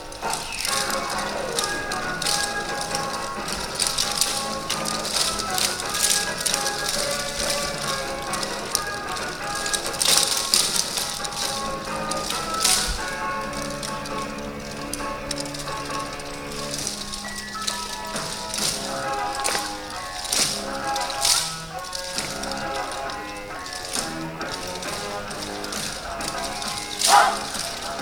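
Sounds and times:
wooden clappers clacking: 0:00.0 - 0:28.0.

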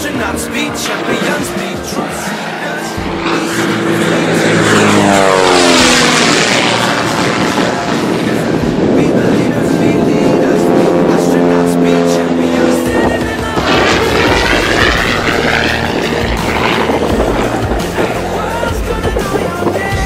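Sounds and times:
propeller plane engine passing: 0:00.0 - 0:20.0.

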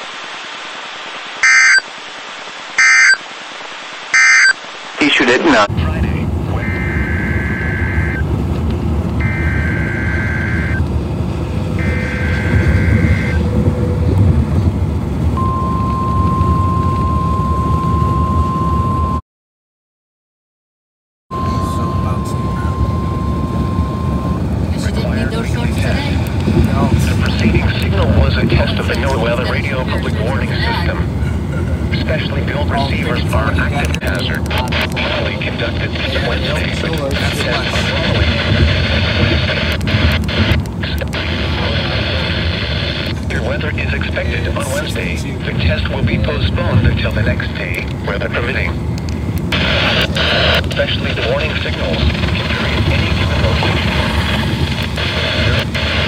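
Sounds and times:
noisy radio audio: 0:00.0 - 0:14.0, 0:21.3 - 0:56.0
steady warning alarm tone: 0:01.4 - 0:01.9, 0:02.8 - 0:03.2, 0:04.1 - 0:04.6, 0:06.5 - 0:08.3, 0:09.2 - 0:10.9, 0:11.7 - 0:14.1, 0:21.3 - 0:25.6
warbling data bursts: 0:02.7 - 0:03.3, 0:04.0 - 0:08.2, 0:09.2 - 0:10.8, 0:11.8 - 0:13.6
car rumble: 0:05.0 - 0:19.2, 0:21.3 - 0:56.0.

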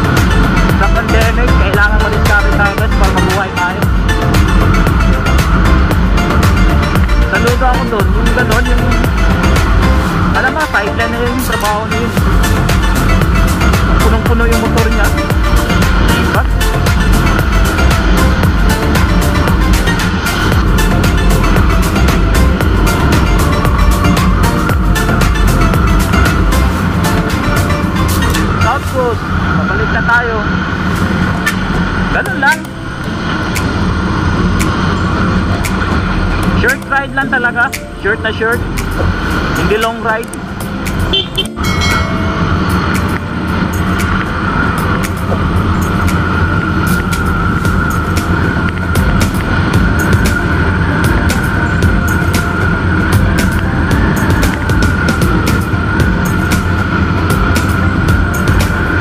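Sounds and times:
wind buffeting microphone: 0:00.0 - 0:36.9, 0:38.6 - 0:59.0
scooter engine whine: 0:00.0 - 0:37.6, 0:38.3 - 0:59.0
road and tyre rumble: 0:00.0 - 0:59.0.

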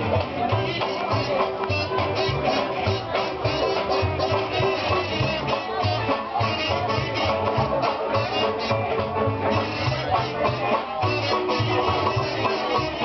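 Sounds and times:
acoustic guitar strumming: 0:00.0 - 0:13.0
banjos playing: 0:00.0 - 0:13.0
plucked washtub bass: 0:00.0 - 0:13.0
washboard rhythm: 0:00.0 - 0:13.0.

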